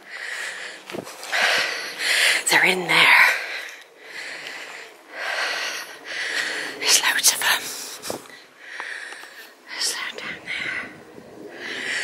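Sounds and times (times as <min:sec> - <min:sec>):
person breathing hard: 0:00.0 - 0:02.5, 0:03.3 - 0:06.9, 0:07.6 - 0:09.6, 0:10.4 - 0:12.0.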